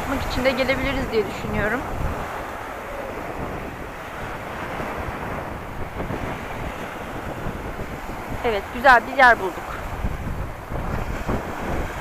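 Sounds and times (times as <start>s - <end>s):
waves washing up pebble beach: 0.0s - 12.0s
wind buffeting microphone: 0.0s - 12.0s.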